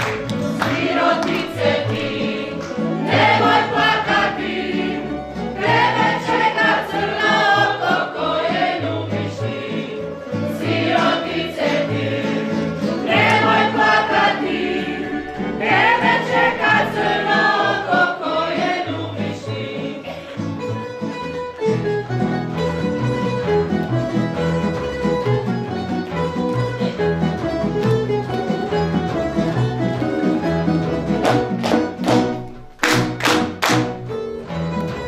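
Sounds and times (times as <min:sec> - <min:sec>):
double bass: 0:00.0 - 0:35.0
group of voices singing: 0:00.4 - 0:20.4.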